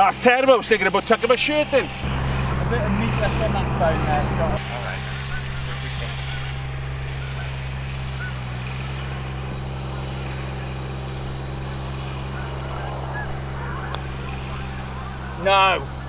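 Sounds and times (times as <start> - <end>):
motor running: 0.0 - 16.0.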